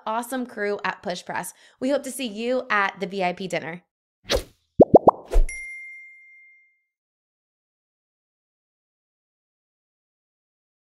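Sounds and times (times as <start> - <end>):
rising bloop: 4.8 - 5.6
sharp hit with bell ding: 5.5 - 6.8.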